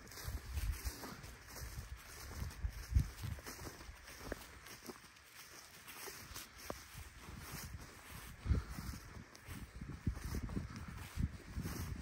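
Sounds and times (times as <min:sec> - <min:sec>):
footsteps through dry grass: 0:00.0 - 0:12.0.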